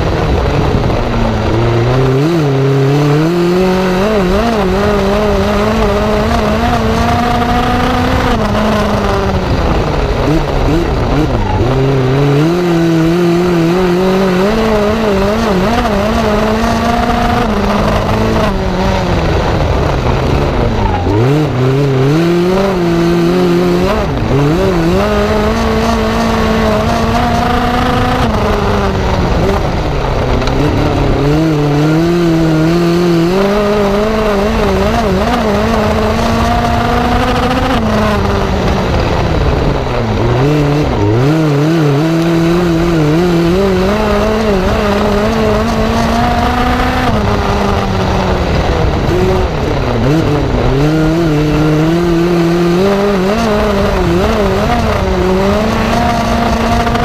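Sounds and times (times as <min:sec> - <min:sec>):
race car engine revving: 0:00.0 - 0:57.0.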